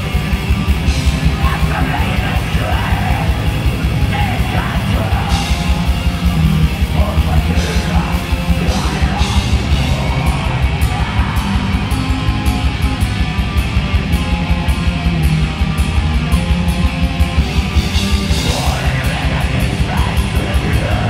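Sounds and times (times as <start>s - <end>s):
distorted electric guitars: 0.0s - 21.0s
fast dense drumming: 0.0s - 21.0s.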